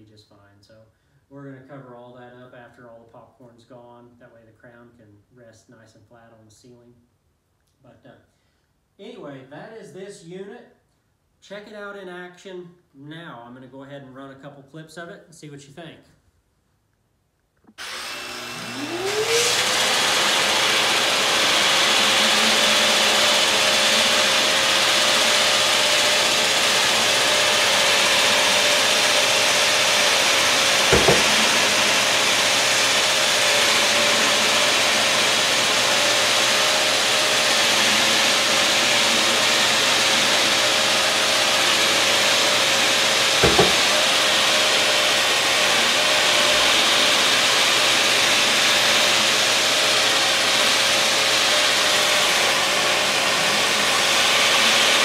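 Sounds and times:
drywall sander motor humming: 17.7 - 55.0.

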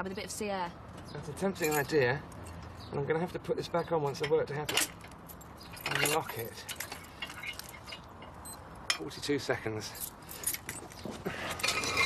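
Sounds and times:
small metal objects jingling: 1.5 - 2.6, 4.7 - 8.6, 9.8 - 11.0.

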